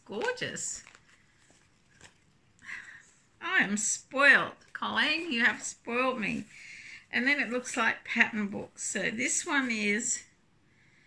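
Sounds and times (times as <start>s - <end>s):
fabric bag rustling: 0.0s - 2.6s.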